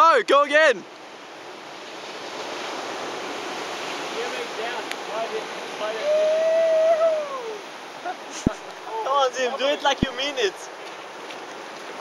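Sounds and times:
surf washing on beach: 0.0 - 12.0
person calling out: 5.9 - 7.6.

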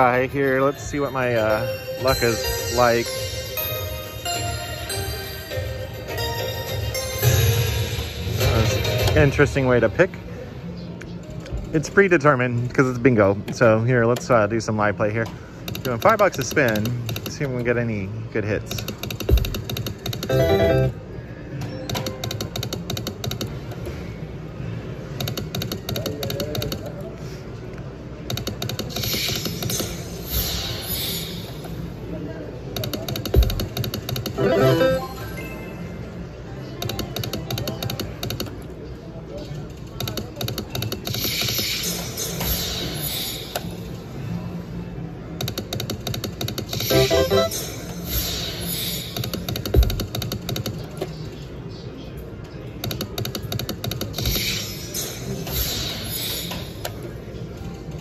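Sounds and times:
casino background noise: 0.0 - 30.4, 31.2 - 42.3, 43.3 - 58.0
clicking slot machine reels: 18.8 - 20.9, 32.8 - 35.1, 45.5 - 47.6.

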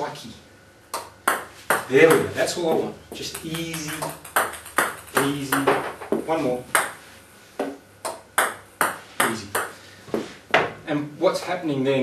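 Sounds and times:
ping pong ball clicks: 0.9 - 2.2, 3.1 - 7.0, 7.6 - 9.8.

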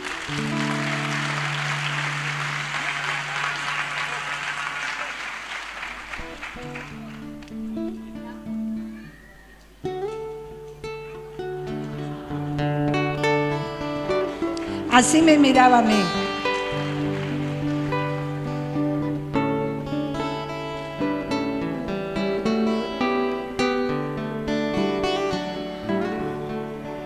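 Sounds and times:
acoustic guitar piece: 0.0 - 5.2, 5.9 - 27.0
audience applauding: 0.0 - 7.7, 13.8 - 20.7.

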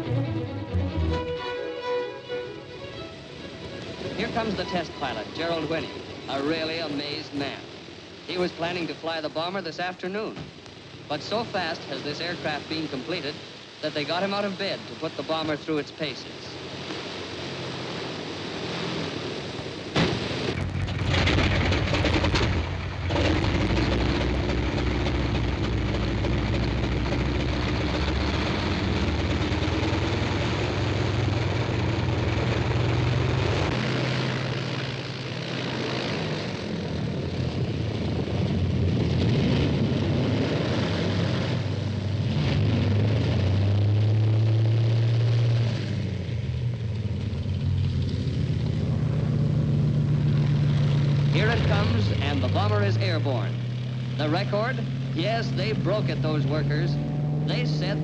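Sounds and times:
piston aircraft engines droning: 0.0 - 58.0.

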